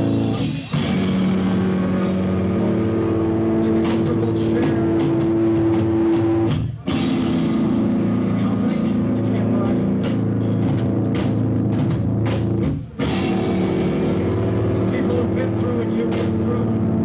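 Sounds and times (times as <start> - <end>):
distorted guitar and bass: 0.0 - 17.0
drum hits: 3.4 - 16.6.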